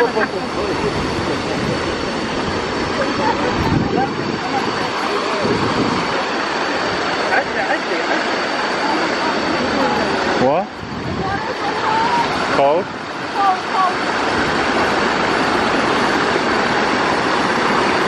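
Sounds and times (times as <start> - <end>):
people's voices: 0.0 - 14.2
waterfall rushing: 0.0 - 18.0.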